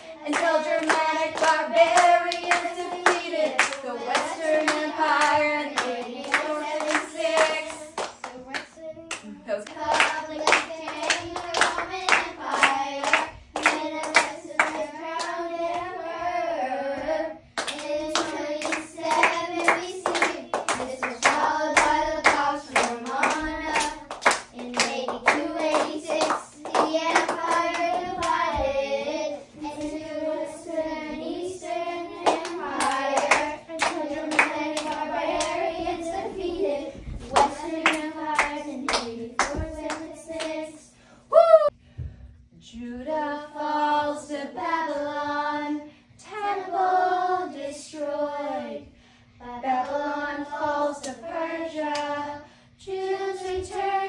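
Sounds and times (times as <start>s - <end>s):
children singing a chant: 0.0s - 8.2s, 9.8s - 40.9s, 43.3s - 54.0s
hands clapping: 0.3s - 15.4s, 17.6s - 28.4s, 32.2s - 35.6s, 37.2s - 40.5s.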